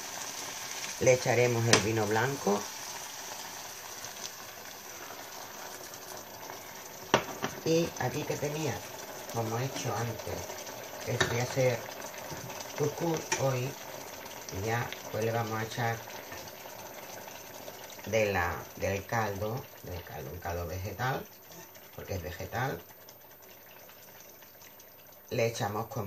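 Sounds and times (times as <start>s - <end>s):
onions sizzling in a pan: 0.0s - 26.0s
sauce simmering in a pot: 0.0s - 26.0s
wine being poured: 2.0s - 26.0s.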